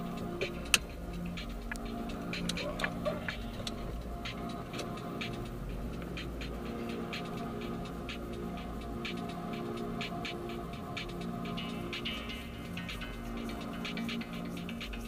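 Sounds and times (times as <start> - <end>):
car engine and road rumble: 0.0 - 15.0
music playing quietly: 0.0 - 15.0.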